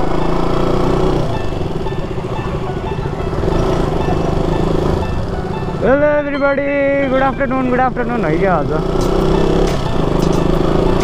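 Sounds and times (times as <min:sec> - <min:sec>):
background music: 0:00.0 - 0:11.0
motorcycle engine running: 0:00.0 - 0:11.0.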